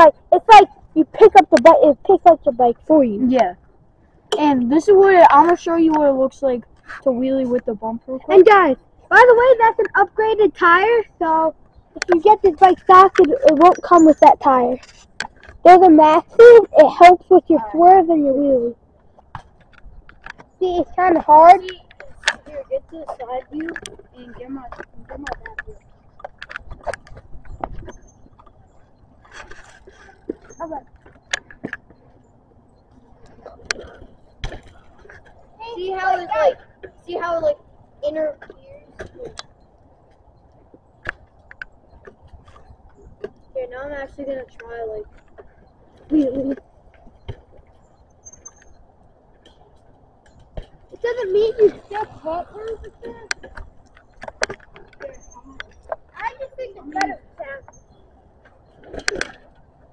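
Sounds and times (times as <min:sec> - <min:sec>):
bicycles clicking and knocking: 0:00.0 - 0:59.9
faint voices: 0:33.0 - 0:39.4, 0:50.8 - 0:57.8.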